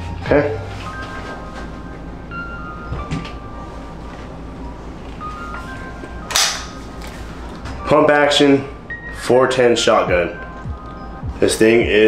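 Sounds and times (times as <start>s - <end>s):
sharp crack: 6.3s - 6.8s.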